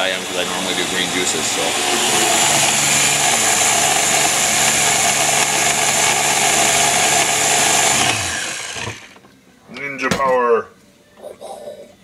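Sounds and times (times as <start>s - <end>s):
blender motor running: 0.0s - 9.2s.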